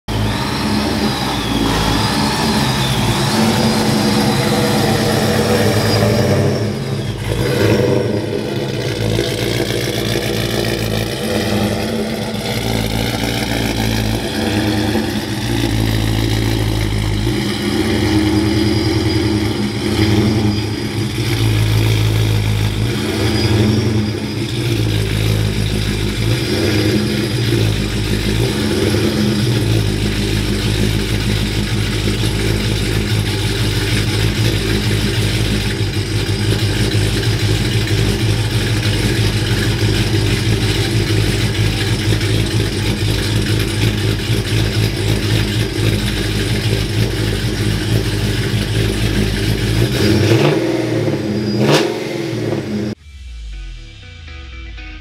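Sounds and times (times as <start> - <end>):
pickup truck engine running: 0.0 - 53.6.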